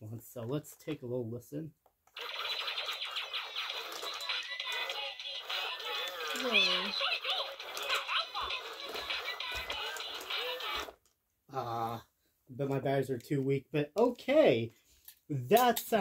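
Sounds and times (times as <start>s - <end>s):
toy voice through tinny speaker: 2.2s - 10.9s
tinny toy music: 2.2s - 11.0s.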